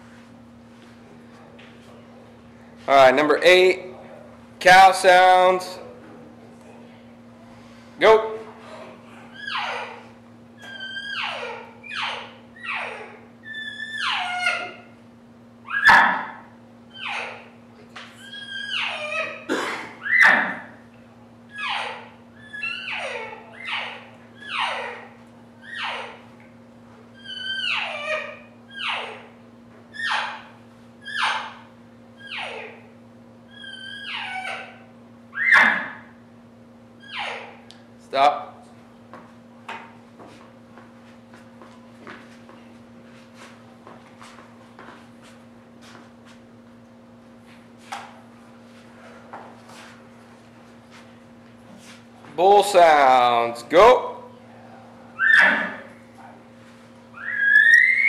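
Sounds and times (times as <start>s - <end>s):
steady low hum: 0.0s - 58.0s
elk call mews and chirps: 33.6s - 36.0s, 55.2s - 55.9s, 57.2s - 58.0s.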